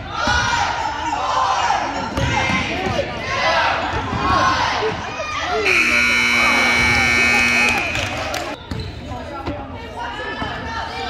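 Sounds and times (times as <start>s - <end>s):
spectators' voices: 0.0s - 11.0s
scoreboard buzzer: 5.7s - 8.6s.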